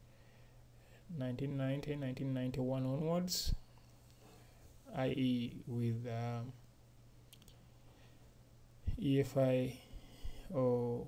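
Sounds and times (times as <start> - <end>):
steady low hum: 0.0 - 11.0
faint clicks: 7.3 - 7.6.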